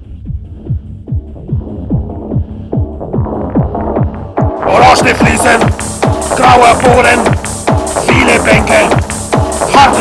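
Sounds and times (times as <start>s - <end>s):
electronic kick drum beat: 0.0s - 10.0s.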